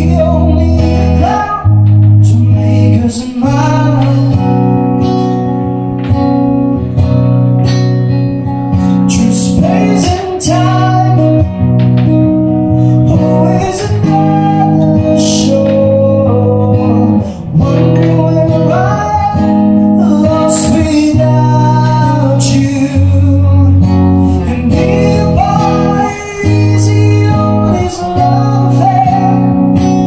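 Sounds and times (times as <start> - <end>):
strummed acoustic guitar: 0.0 - 30.0.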